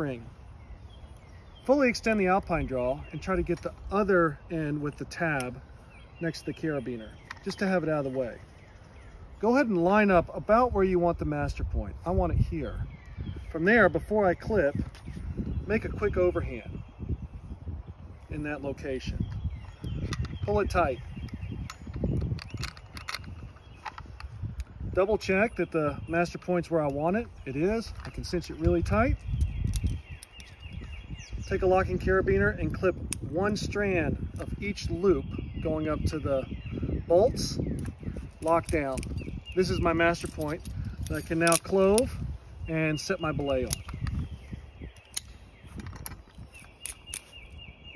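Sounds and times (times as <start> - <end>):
carabiner clicks: 4.7 - 5.6, 6.3 - 8.0, 19.0 - 25.5, 26.2 - 31.0, 37.6 - 42.3, 42.9 - 47.7.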